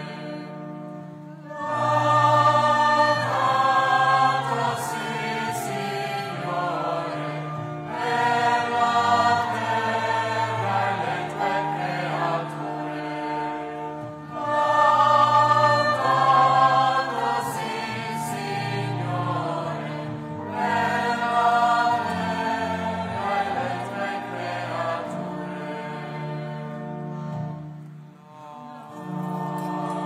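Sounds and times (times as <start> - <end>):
choir singing slow chant: 0.0 - 0.7, 1.4 - 27.3, 28.2 - 30.0.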